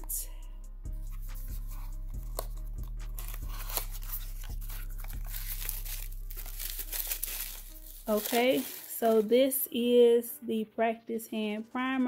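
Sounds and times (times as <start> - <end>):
background music with low beat: 0.0 - 12.0
bubble wrap and cardboard crinkling: 1.1 - 9.5.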